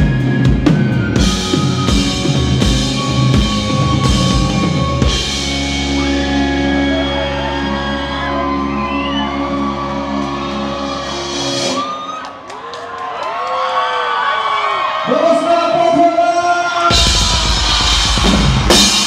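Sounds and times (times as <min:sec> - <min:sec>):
drums and cymbals crash: 0:00.0 - 0:06.7, 0:16.9 - 0:19.0
rock band final chord: 0:00.7 - 0:11.8
people whooping and yelling: 0:05.8 - 0:15.6.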